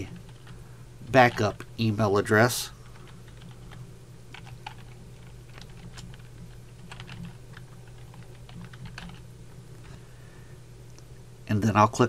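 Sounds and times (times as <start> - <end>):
steady low hum: 0.0 - 12.0
keyboard typing: 3.0 - 9.2.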